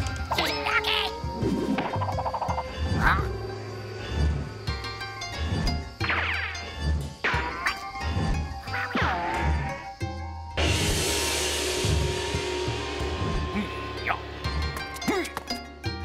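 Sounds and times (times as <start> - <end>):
cartoon background music: 0.0 - 16.0
gong crash: 10.6 - 15.1.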